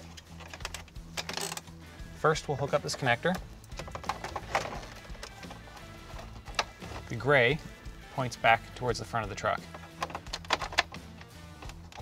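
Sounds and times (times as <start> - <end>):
hard plastic clicks and knocks: 3.3 - 7.1, 9.6 - 12.0.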